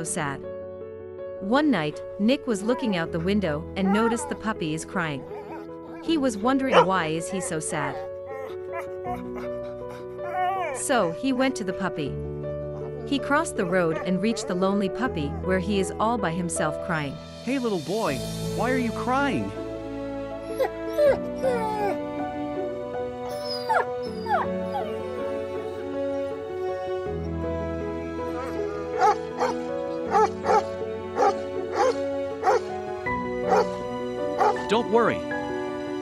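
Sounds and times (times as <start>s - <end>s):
soft background music: 0.0s - 36.0s
puppy whimpering: 2.7s - 4.5s, 5.2s - 6.1s, 6.7s - 11.2s, 12.8s - 15.5s, 20.4s - 22.0s, 23.3s - 25.1s, 28.4s - 30.6s
cartoon puppy whimpering: 6.7s - 11.2s.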